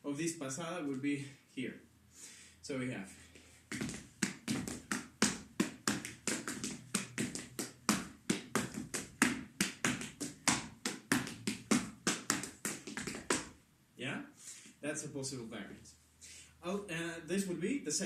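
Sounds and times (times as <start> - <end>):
shoes tapping on wooden floor: 3.7 - 13.5.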